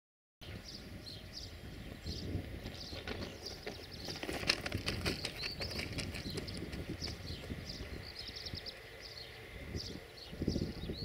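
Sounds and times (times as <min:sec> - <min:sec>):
small birds chirping: 0:00.4 - 0:11.0
locomotive rolling past: 0:00.9 - 0:11.0.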